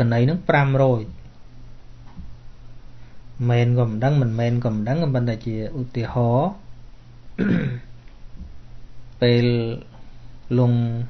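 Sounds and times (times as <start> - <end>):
man clearing his throat: 7.4 - 7.9.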